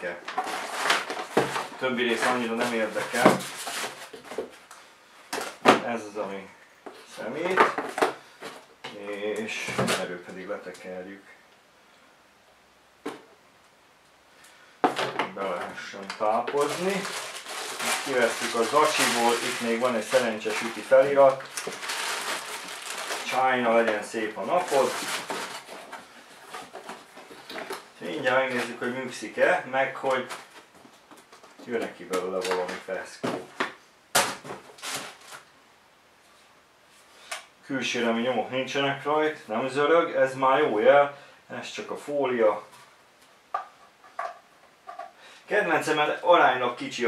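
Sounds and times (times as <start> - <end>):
cardboard rustling and scraping: 0.1 - 4.6, 15.4 - 29.0, 30.0 - 35.5.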